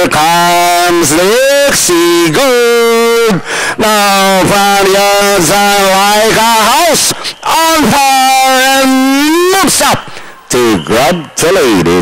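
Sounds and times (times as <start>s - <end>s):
race caller's drawn-out voice: 0.0s - 12.0s.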